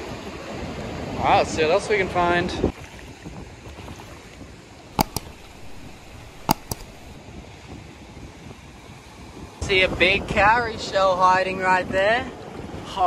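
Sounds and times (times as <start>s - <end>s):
wind: 0.0s - 13.0s
sharp clicks: 5.0s - 7.2s.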